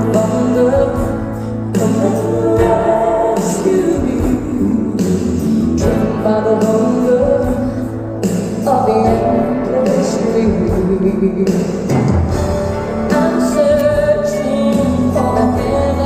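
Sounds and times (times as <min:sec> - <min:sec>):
woman singing pop ballad: 0:00.0 - 0:12.1, 0:13.0 - 0:16.0
live band accompaniment: 0:00.0 - 0:16.0.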